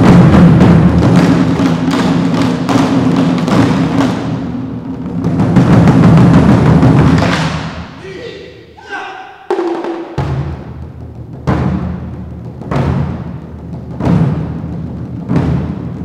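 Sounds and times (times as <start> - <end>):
barrel drums rolling: 0.0 - 8.0, 9.6 - 16.0.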